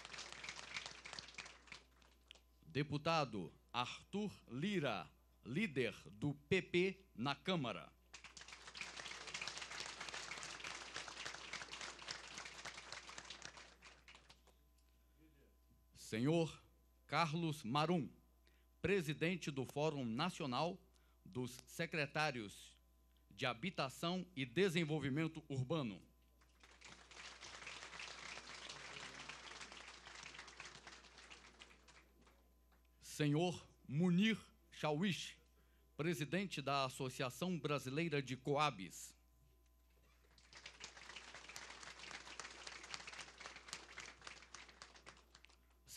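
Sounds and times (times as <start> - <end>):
audience applauding: 0.0 - 2.3, 8.1 - 14.5, 26.5 - 32.4, 40.2 - 45.7.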